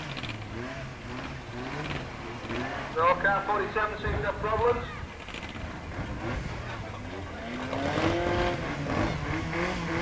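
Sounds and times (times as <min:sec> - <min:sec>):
engine revving: 0:00.0 - 0:04.2, 0:05.2 - 0:10.0
car engines running: 0:00.0 - 0:10.0.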